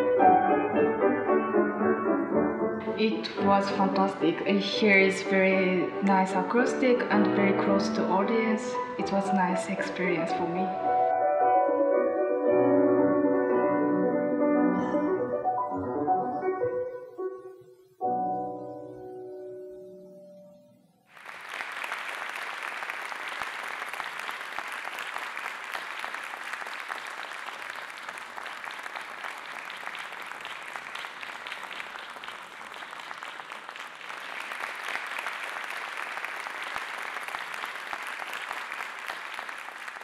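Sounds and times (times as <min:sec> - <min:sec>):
grand pianos playing: 0:00.0 - 0:21.0
audience applause: 0:21.1 - 0:40.0.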